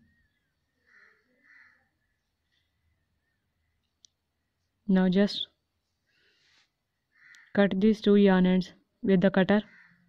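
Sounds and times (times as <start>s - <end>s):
person speaking: 4.8s - 5.6s, 7.6s - 9.7s.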